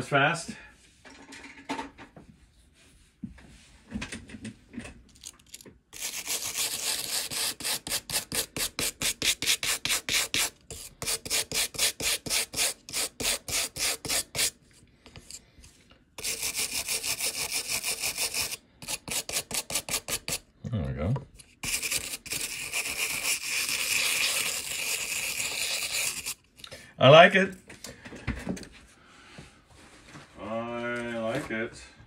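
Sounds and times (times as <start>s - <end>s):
brass brush scrubbing board: 6.0s - 15.4s, 16.2s - 20.4s, 21.6s - 26.4s.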